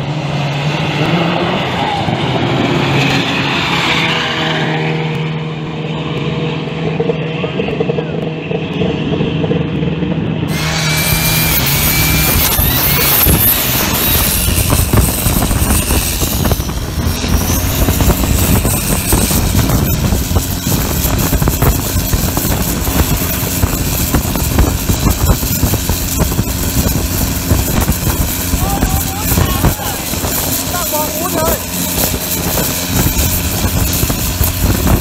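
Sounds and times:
boat diesel engine running hard: 0.0 - 35.0
rushing water and spray: 10.5 - 35.0.

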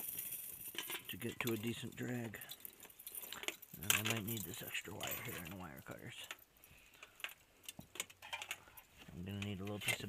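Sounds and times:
metal gear clicking and clinking: 0.0 - 6.5.

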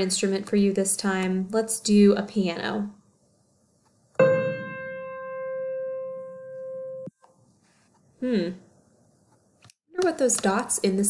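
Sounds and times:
piano note ringing: 4.2 - 7.1.

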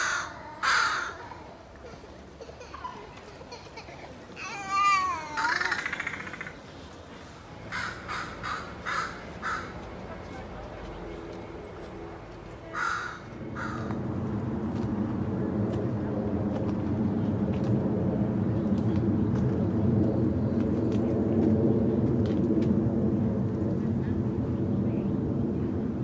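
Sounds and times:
crow cawing: 0.0 - 1.4, 4.4 - 6.6, 7.7 - 9.8, 12.7 - 14.0
low rumble: 13.3 - 26.0.

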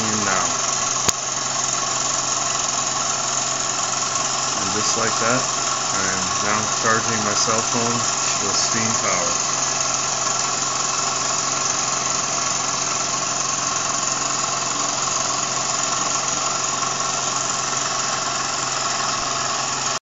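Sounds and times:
toy steam engine whirring: 0.0 - 20.0.

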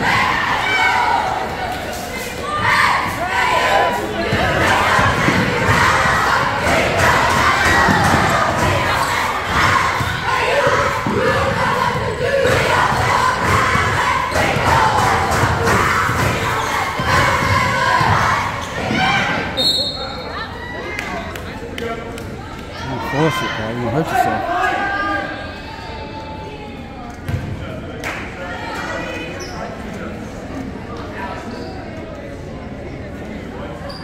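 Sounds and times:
crowd shouting and cheering: 0.0 - 29.4
referee whistle: 19.6 - 20.4.

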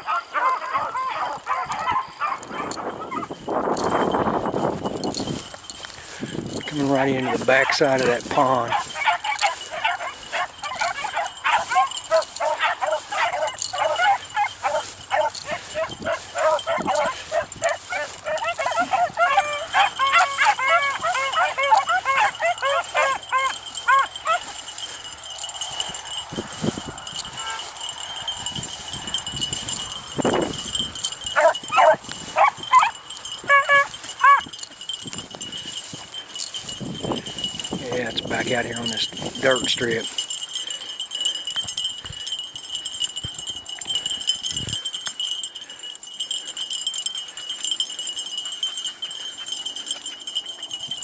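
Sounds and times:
dogs baying: 0.0 - 51.0.

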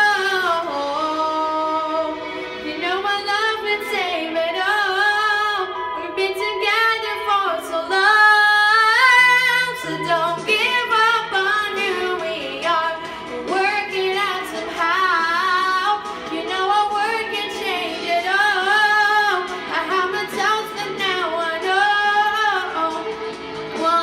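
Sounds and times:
girl singing into microphone: 0.0 - 24.0.

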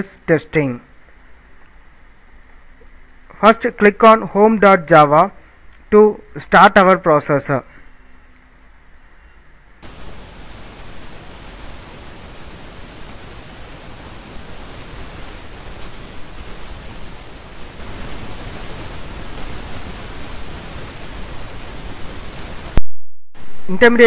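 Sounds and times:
recording noise hiss: 0.0 - 22.8, 23.4 - 24.0.

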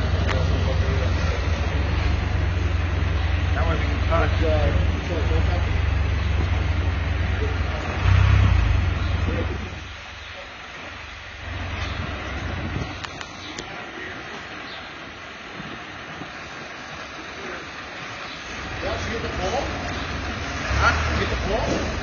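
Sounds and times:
motor vehicle rumble: 0.0 - 22.0
traffic background noise: 0.0 - 22.0.

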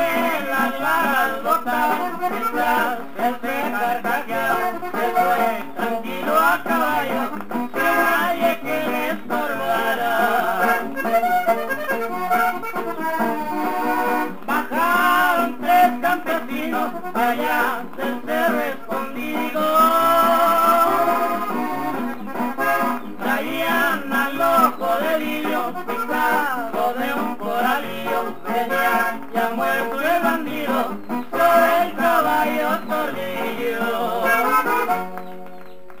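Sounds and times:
accordion melody: 0.0 - 36.0
strummed guitar: 0.0 - 36.0.

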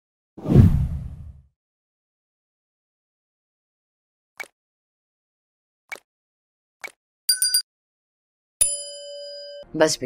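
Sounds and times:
whoosh sweeping into deep rumble: 0.4 - 1.4.

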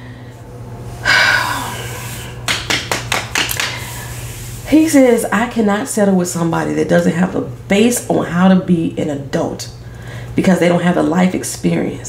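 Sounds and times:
woman's sharp loud breath: 1.0 - 2.4.

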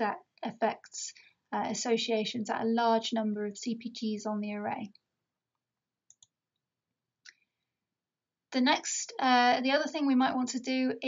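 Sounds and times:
faint computer clicks: 6.1 - 6.4.

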